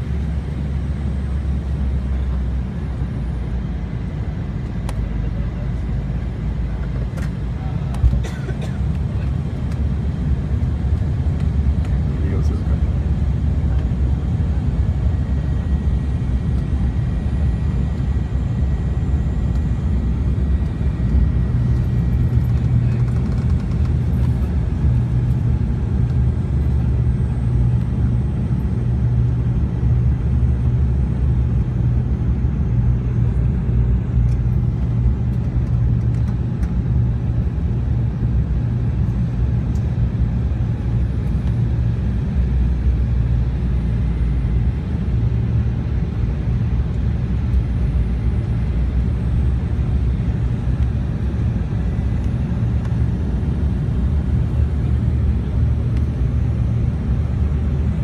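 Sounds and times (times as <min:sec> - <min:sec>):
airliner cabin engine rumble: 0:00.0 - 0:58.0.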